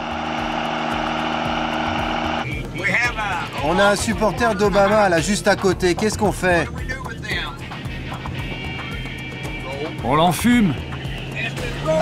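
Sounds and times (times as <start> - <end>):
diesel truck engine revving: 0.0 - 2.4.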